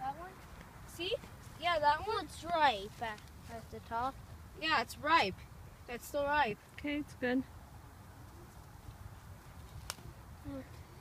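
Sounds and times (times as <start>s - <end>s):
strawberry stem snapping: 9.7s - 10.0s.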